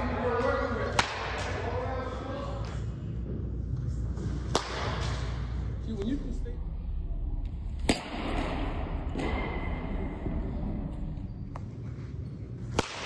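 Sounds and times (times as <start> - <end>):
bat cracking a baseball: 12.7 - 13.0.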